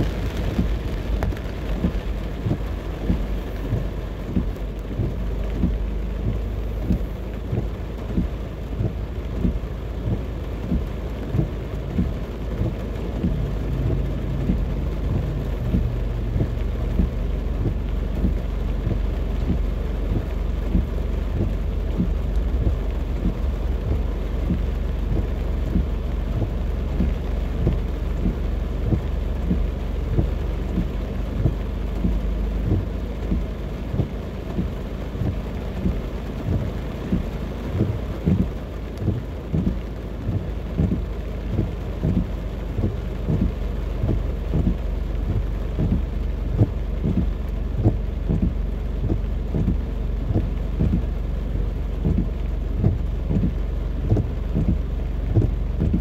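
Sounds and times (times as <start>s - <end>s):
heavy rain on car roof: 0.0s - 56.0s.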